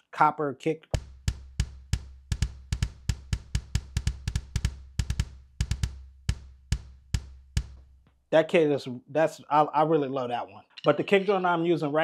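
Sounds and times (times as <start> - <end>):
electronic kick drum hits: 1.0 - 7.9.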